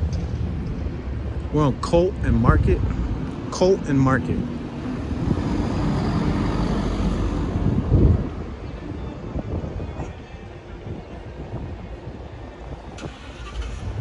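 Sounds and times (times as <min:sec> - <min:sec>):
steady traffic hum: 0:00.0 - 0:14.0.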